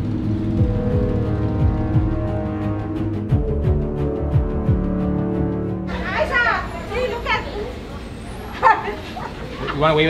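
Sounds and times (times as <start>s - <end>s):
background music: 0.0s - 6.8s
people talking: 5.9s - 10.0s.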